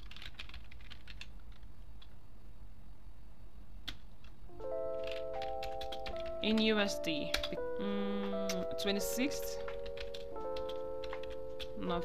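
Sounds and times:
computer keyboard keystrokes: 0.0 - 2.2, 3.9 - 7.6, 8.2 - 12.0
low steady hum: 0.0 - 12.0
background music with held notes: 4.5 - 12.0.

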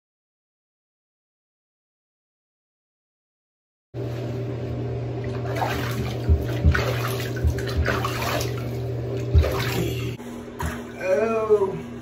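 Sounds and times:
steady low hum: 4.0 - 12.0
water sloshing in bathtub: 5.1 - 10.2
dull thumps: 6.0 - 8.4.

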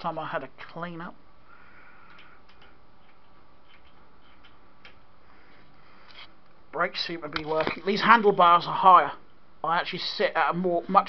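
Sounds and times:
low room noise: 0.0 - 11.0
faint small clicks: 2.0 - 5.0.

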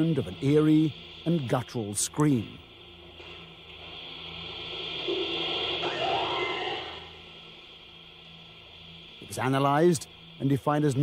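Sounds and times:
tape hiss: 0.0 - 11.0
rough guttural scream: 5.8 - 7.2.

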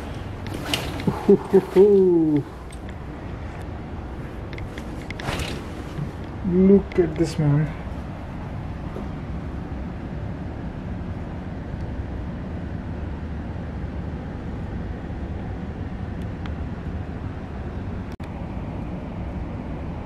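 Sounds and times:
low rumbling background noise: 0.0 - 20.0.

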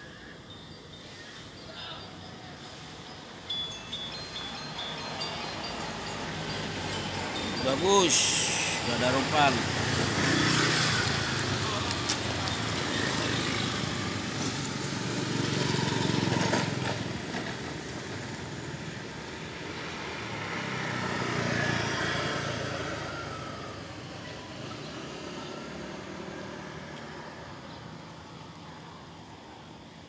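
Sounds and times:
motor vehicle engines: 0.0 - 30.0.

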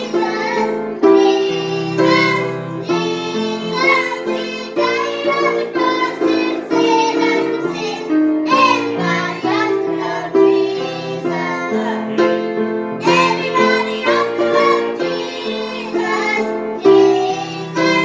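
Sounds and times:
children singing: 0.0 - 18.0
grand piano: 0.0 - 18.0.

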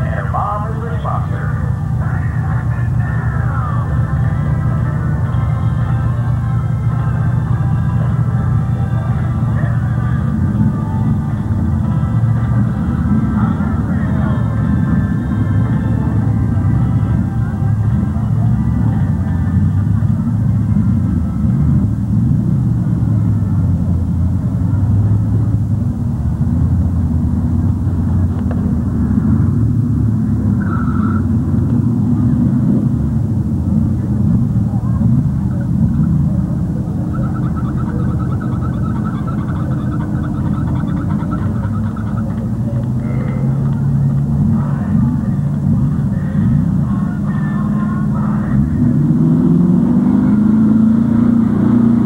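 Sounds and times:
truck engine revving under load: 0.0 - 52.0
tyres churning through mud: 33.7 - 47.6, 48.2 - 52.0.

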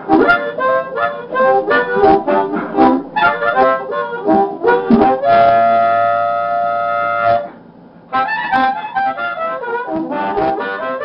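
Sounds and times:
harmonica long steady note: 0.0 - 11.0.

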